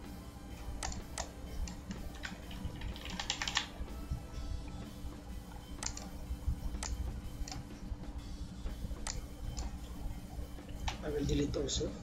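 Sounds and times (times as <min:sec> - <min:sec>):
low steady hum: 0:00.0 - 0:12.0
computer keyboard keystrokes: 0:00.8 - 0:03.7, 0:05.8 - 0:06.1, 0:06.8 - 0:07.6.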